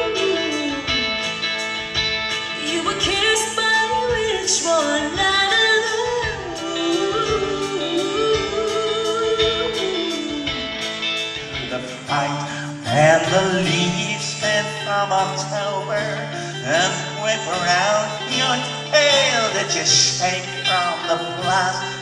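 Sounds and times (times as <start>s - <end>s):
flute melody: 0.0s - 22.0s
live rock band playing: 0.0s - 22.0s.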